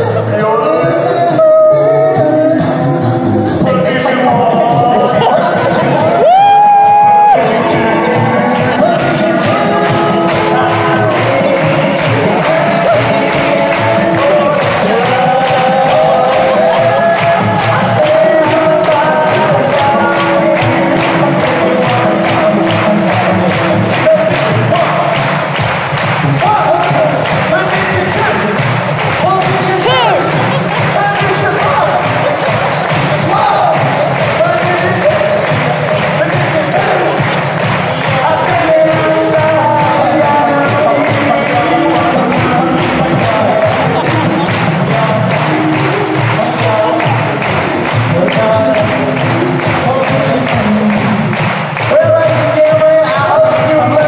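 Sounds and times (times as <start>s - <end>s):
a cappella group singing harmony: 0.0s - 25.5s, 38.0s - 51.2s
beatboxed beat: 0.0s - 54.0s.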